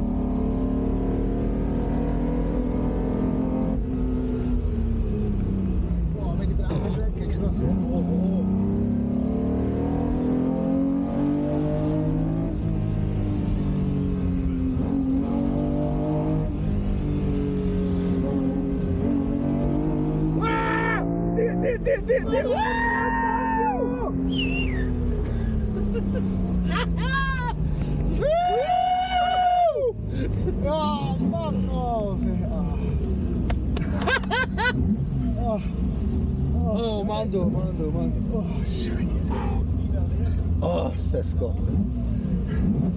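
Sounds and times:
car engine revving: 0.0 - 42.9.

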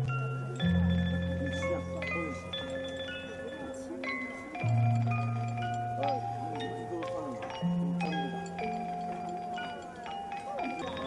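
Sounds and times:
hanging chimes ringing: 0.0 - 11.0.

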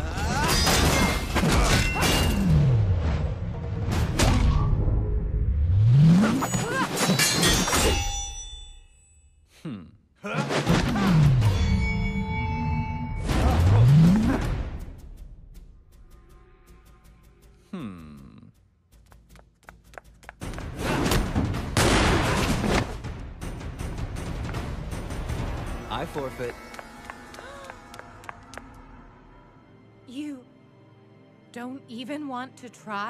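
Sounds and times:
hits and metallic clangs: 0.2 - 2.8, 6.1 - 9.1.

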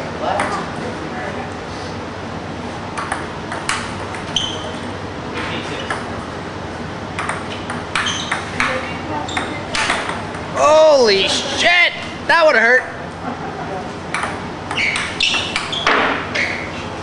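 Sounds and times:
table tennis ball clicking: 7.2 - 10.3
man shouting: 10.6 - 13.0.

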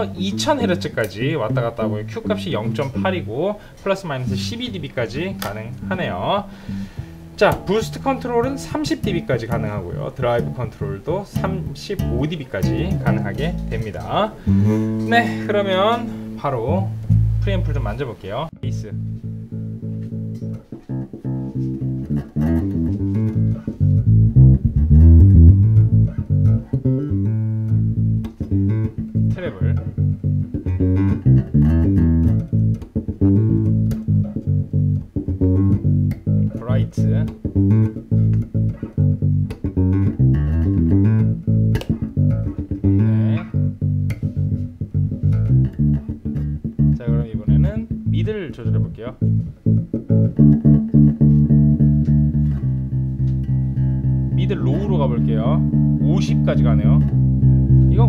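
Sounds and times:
electric bass guitar riff: 0.0 - 58.0.

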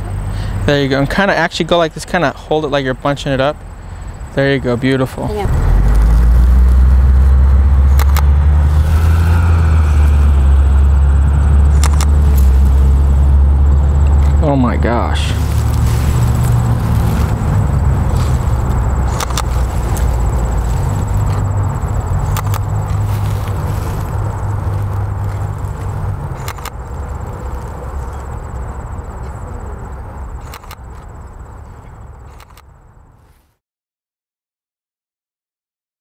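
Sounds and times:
low rumble: 5.3 - 29.2
faint clicks: 30.4 - 31.1.

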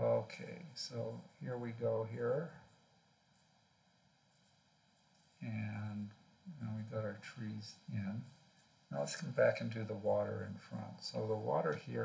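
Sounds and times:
faint steady hiss: 0.0 - 12.0
thin electrical hum: 0.0 - 12.0.

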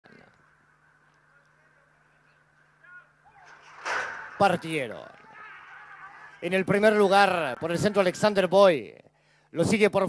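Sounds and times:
starting gates springing open: 3.4 - 5.3.

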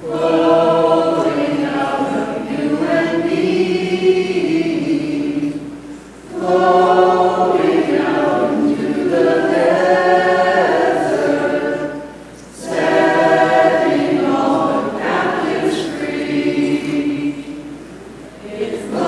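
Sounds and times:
church choir singing a hymn: 0.0 - 19.0.

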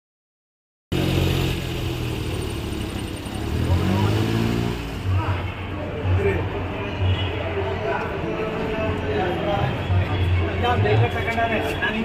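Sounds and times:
vehicle engine humming: 0.9 - 6.8
people's voices: 3.2 - 12.0.

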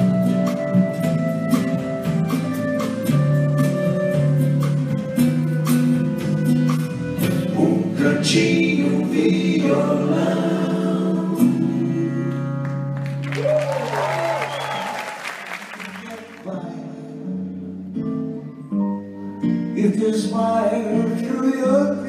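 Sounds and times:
acoustic guitar chords: 0.0 - 13.3, 15.5 - 22.0
live band playing: 0.0 - 16.5
audience applauding: 12.6 - 16.5
gliding whistle: 13.3 - 16.0.

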